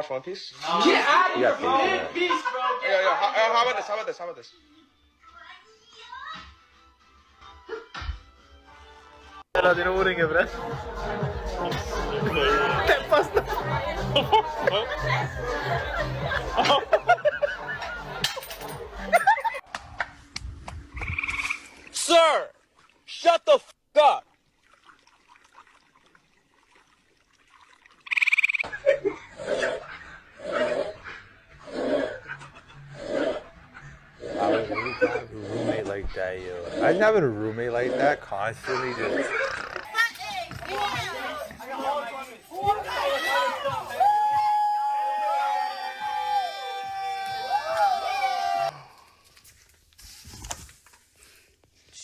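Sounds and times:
voices: 9.6 - 18.2
frog squeaking: 21.0 - 21.7, 28.0 - 28.7, 39.0 - 41.2
other voices: 34.2 - 44.3.

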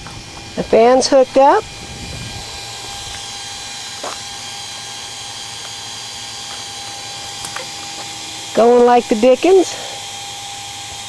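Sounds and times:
electric blower fan whirring: 0.0 - 11.0.

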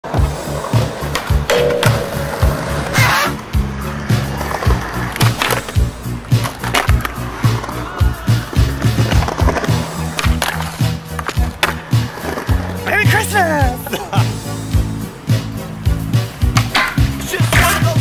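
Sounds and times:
skateboard wheels rolling on concrete: 0.0 - 18.0
music with steady beat and bass: 0.1 - 12.8, 13.9 - 18.0
skateboard clacks: 0.1 - 12.9, 16.4 - 18.0.

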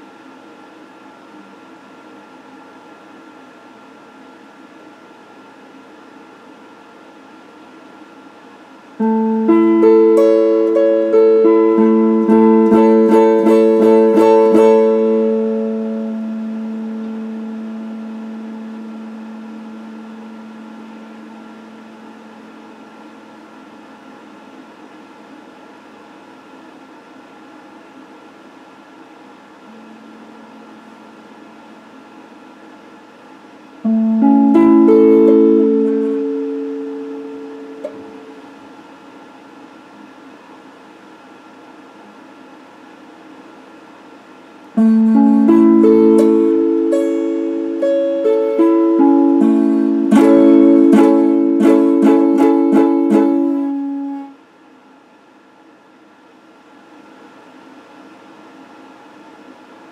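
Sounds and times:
faint steady hum: 0.0 - 59.9
electric guitar chords: 9.0 - 23.5, 29.7 - 32.3, 33.8 - 38.6, 44.8 - 54.4.

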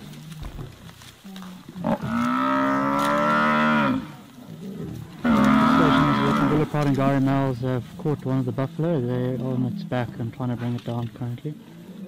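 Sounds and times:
buffalo bellowing: 1.7 - 7.5.

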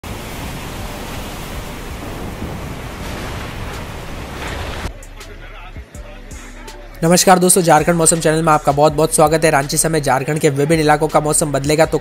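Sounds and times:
storm rushing noise: 0.0 - 4.9.

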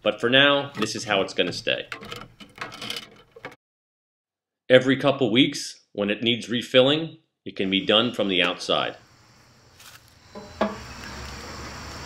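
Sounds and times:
metal watering can clank: 0.6 - 3.6.

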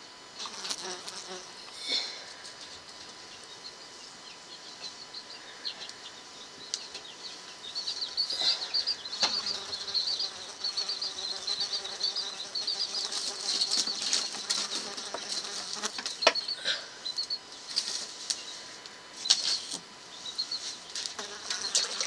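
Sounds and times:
small birds chirping: 3.1 - 18.6, 19.2 - 22.0.

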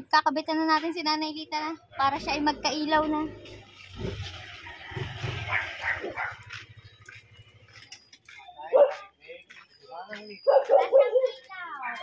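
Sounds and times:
dog barking: 5.5 - 6.5, 8.7 - 9.0, 10.4 - 11.4.

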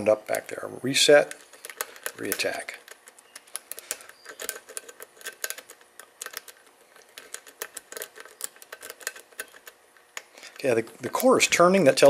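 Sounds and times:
lock pick clicking in a lock: 1.3 - 10.3.

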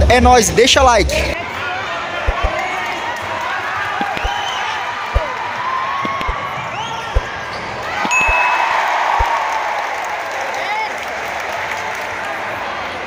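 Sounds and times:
crowd chatter: 1.3 - 13.0
basketball bouncing on hardwood: 2.3 - 2.6
sneakers squeaking: 2.3 - 2.6, 4.0 - 4.4, 6.0 - 8.6.

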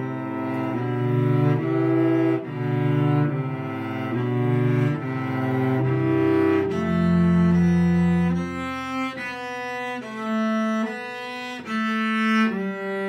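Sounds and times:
bowed cello: 0.0 - 13.0.

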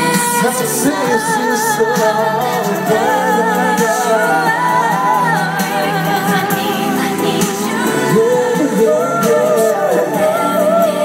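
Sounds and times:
female and male singers duet: 0.0 - 11.0
pop backing track: 0.0 - 11.0.

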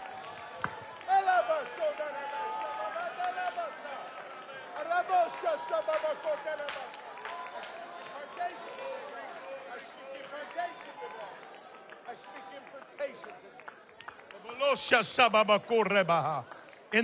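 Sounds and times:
congregation praying aloud: 0.0 - 13.3, 14.4 - 17.0.

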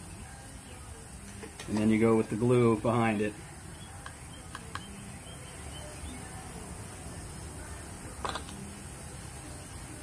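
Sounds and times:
steady background noise: 0.0 - 10.0
plastic pipe fitting clicks: 8.2 - 8.6.

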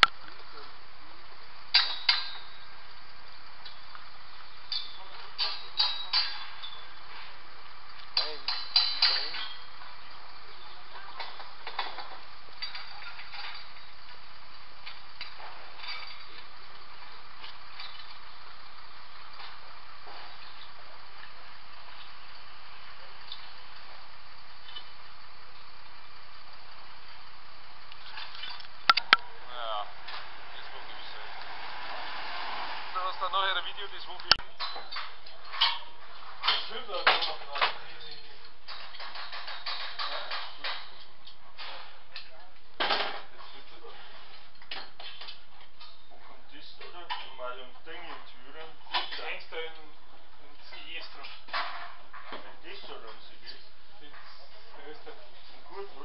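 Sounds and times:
steel tubes clinking and clanging: 1.6 - 25.8, 27.9 - 31.5, 33.4 - 56.0.

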